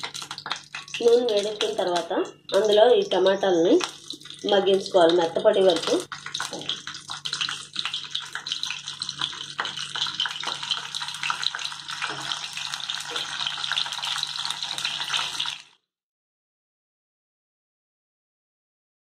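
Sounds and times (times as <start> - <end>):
tomatoes sizzling in a pan: 0.0 - 15.8.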